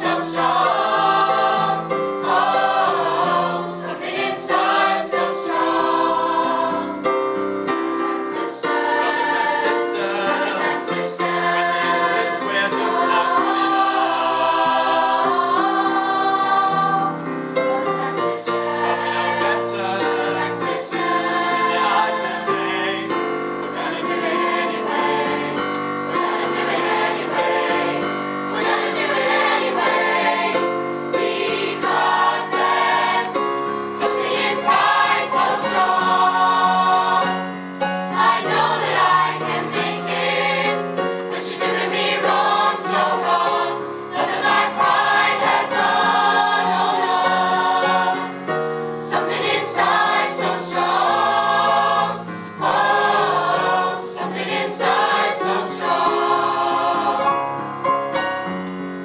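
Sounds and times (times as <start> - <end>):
mixed choir singing: 0.0 - 57.8
keyboard accompaniment: 0.0 - 59.0.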